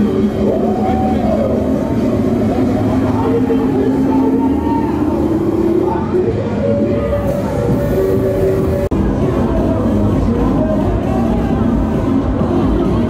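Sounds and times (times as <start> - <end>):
steady low rumble: 0.0 - 13.0
voices of passers-by: 0.0 - 13.0.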